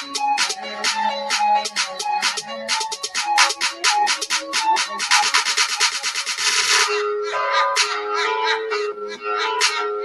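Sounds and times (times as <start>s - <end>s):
fast noisy beats: 0.0s - 7.0s.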